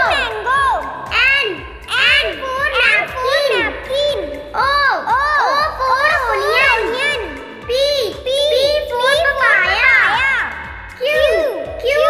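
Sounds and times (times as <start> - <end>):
child singing: 0.0 - 12.0.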